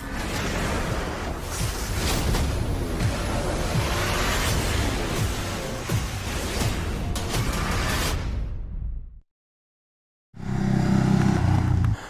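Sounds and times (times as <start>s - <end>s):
motorcycle engine running: 10.4s - 12.0s.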